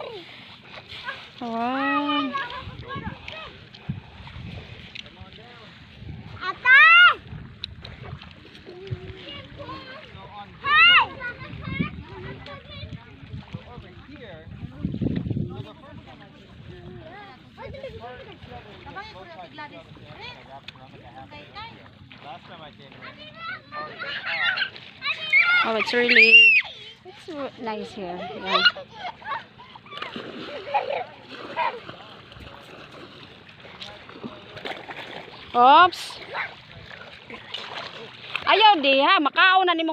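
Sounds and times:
people talking and calling out: 0.0s - 39.9s
water splashing: 0.0s - 39.9s.

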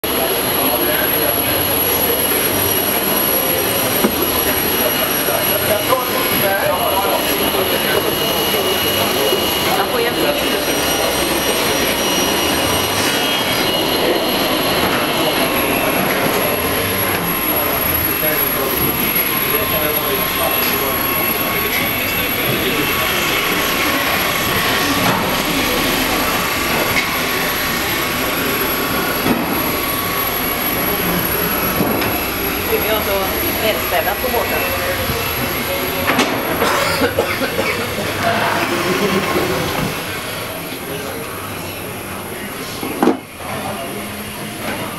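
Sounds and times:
indistinct voices: 0.0s - 44.9s
machinery noise: 0.0s - 44.9s
faint high whines: 0.1s - 36.6s.

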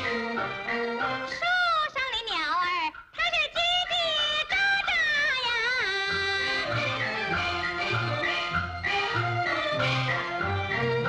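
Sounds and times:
instrumental accompaniment: 0.0s - 1.8s, 2.9s - 11.0s.

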